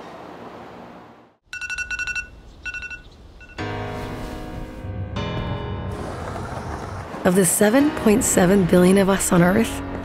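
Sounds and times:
electronic alarm beeping: 0:01.5 - 0:03.6
music: 0:03.6 - 0:10.0.

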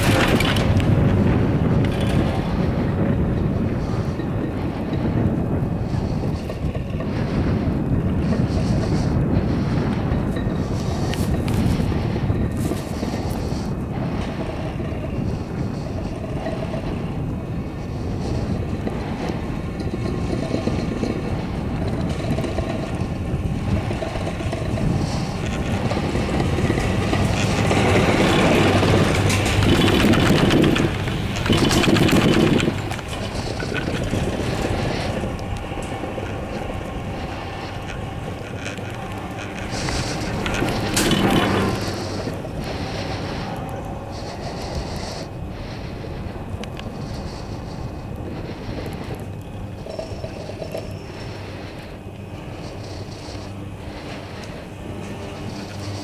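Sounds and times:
chairlift running: 0:00.0 - 0:56.0
rumble over sheave wheels: 0:00.0 - 0:56.0
wind buffeting microphone: 0:00.0 - 0:56.0.

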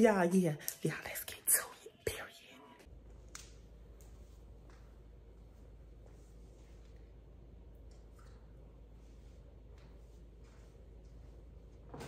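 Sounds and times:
woman half-whispering: 0:00.8 - 0:02.9.

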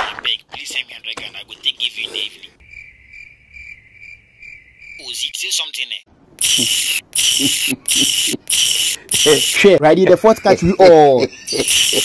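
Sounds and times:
cricket chirping: 0:02.6 - 0:05.3, 0:06.4 - 0:09.6, 0:11.6 - 0:12.0.

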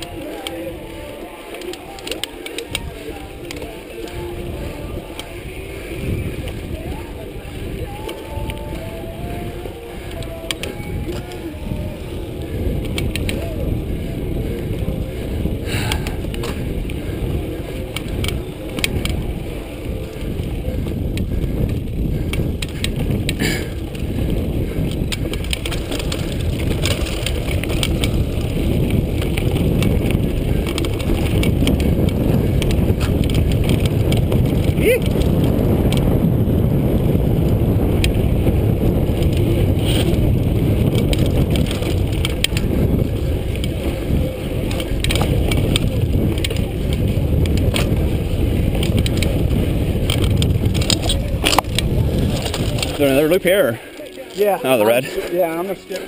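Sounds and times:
bike rattles and knocks: 0:00.0 - 0:56.0
wind and tyres on dirt rumble: 0:00.0 - 0:56.0.

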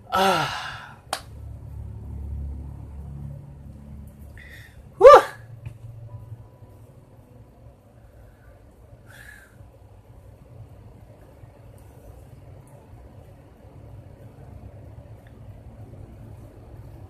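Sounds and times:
man's wordless cry: 0:00.1 - 0:01.0, 0:05.0 - 0:05.4.

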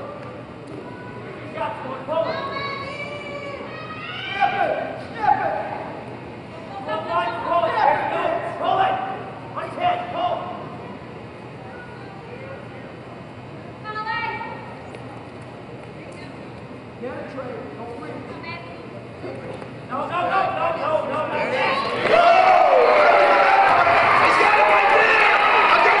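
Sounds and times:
large gym background noise: 0:00.0 - 0:26.0.

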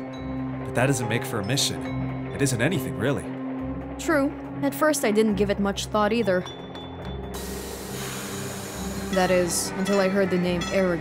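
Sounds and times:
soft background music: 0:00.0 - 0:11.0
steam locomotive hissing: 0:07.4 - 0:09.7.

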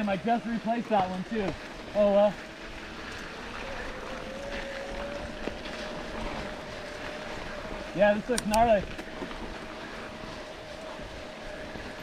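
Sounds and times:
electric bike motor whining: 0:00.0 - 0:12.0
tyres rolling on sandy dirt: 0:00.0 - 0:12.0.

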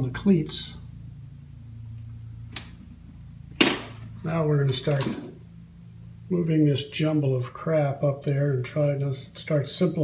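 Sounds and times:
low steady hum: 0:00.0 - 0:10.0
sharp knock: 0:03.6 - 0:04.0.

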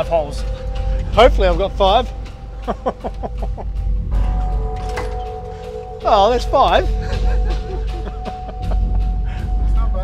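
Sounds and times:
background music with held tones: 0:00.0 - 0:10.0
man laughing: 0:02.6 - 0:03.9, 0:06.8 - 0:09.6.

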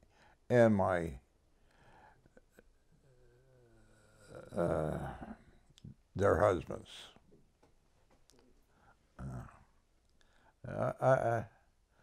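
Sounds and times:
elderly man speaking: 0:00.5 - 0:01.3, 0:04.2 - 0:07.2, 0:09.2 - 0:09.7, 0:10.6 - 0:11.6.

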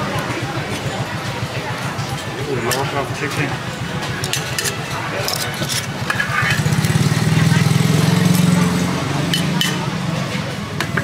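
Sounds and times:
metal tongs clicking on spatula: 0:09.3 - 0:09.8.

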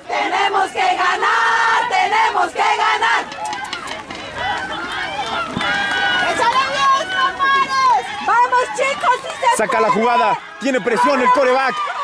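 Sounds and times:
crowd chanting and shouting: 0:00.0 - 0:12.0.

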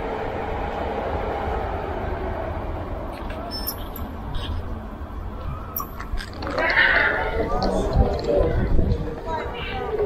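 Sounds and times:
people's voices: 0:03.1 - 0:10.0.

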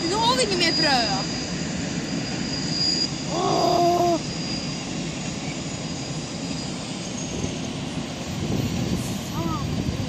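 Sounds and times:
freight train rumbling past: 0:00.0 - 0:10.0.

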